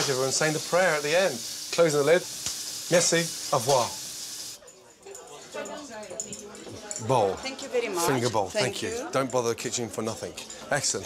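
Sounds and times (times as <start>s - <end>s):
food sizzling on stove: 0.0s - 4.6s.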